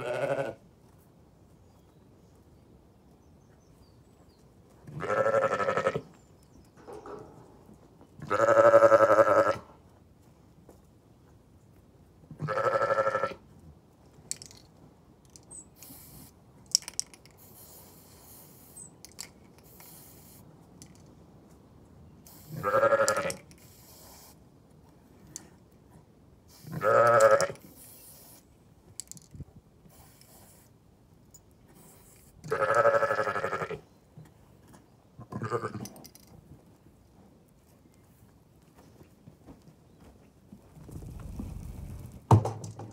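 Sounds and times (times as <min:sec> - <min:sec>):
sheep bleating: 0:00.0 - 0:00.6, 0:04.9 - 0:06.1, 0:08.2 - 0:09.7, 0:12.4 - 0:13.4, 0:22.6 - 0:23.4, 0:26.7 - 0:27.6, 0:32.5 - 0:33.8, 0:35.2 - 0:35.9.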